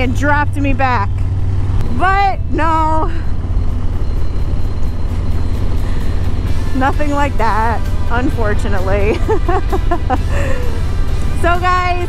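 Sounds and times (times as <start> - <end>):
motorcycle engine rumbling: 0.0 - 12.0
road and wind noise: 0.0 - 12.0.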